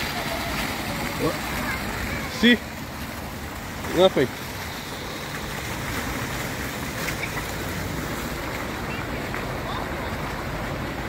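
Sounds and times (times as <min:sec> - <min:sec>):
fountain water splashing into pool: 0:00.0 - 0:11.0.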